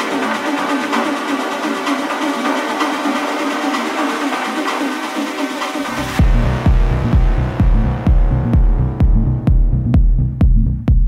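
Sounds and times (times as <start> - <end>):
techno music over sound system: 0.0 - 11.0.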